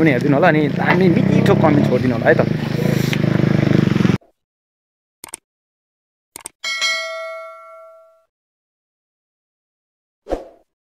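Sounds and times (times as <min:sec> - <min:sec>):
notification bell chime: 0:06.6 - 0:08.3.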